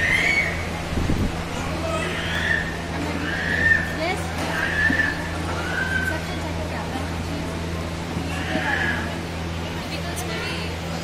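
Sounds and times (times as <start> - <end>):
indistinct voices: 0.0 - 11.0
steady low hum: 0.0 - 11.0.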